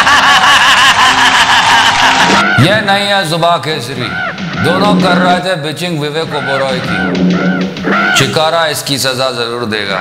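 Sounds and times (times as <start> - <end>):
person snickering: 0.0 - 2.4.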